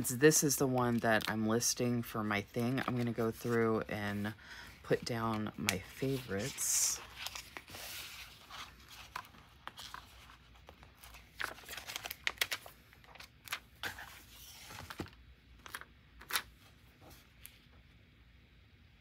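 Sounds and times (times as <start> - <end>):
paper handling: 2.4 - 17.6.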